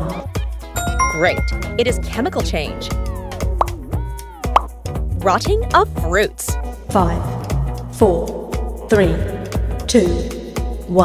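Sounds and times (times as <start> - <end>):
background music: 0.8 - 2.8.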